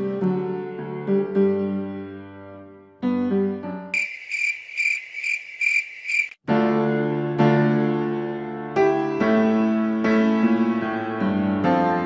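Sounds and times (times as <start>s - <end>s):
crickets chirping: 4.0s - 6.4s.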